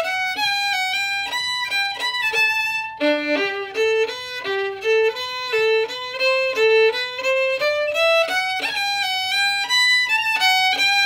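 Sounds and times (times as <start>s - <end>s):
solo fiddle jig: 0.0s - 11.0s.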